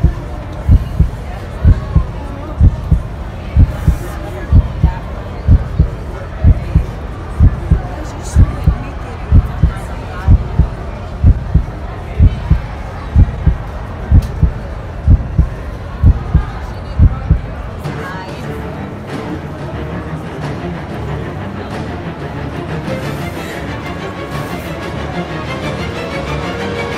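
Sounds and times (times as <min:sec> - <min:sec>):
heartbeat thuds: 0:00.0 - 0:17.5
faint talking: 0:00.0 - 0:22.3.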